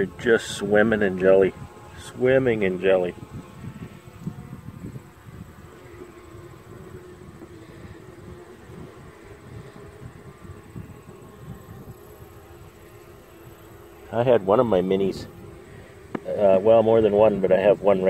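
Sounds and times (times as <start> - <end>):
bees humming: 0.0 - 18.0.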